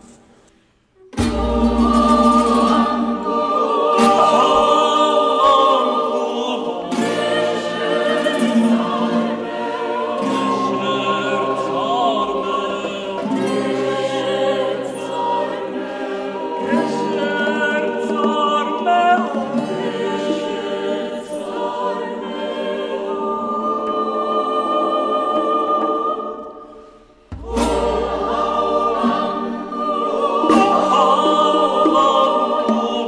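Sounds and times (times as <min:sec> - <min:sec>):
choir singing sustained chords: 0:00.0 - 0:33.0.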